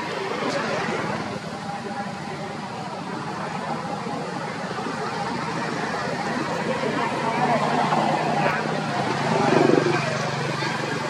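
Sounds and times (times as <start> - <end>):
indistinct voices: 0.0 - 11.0
low engine hum: 0.0 - 11.0.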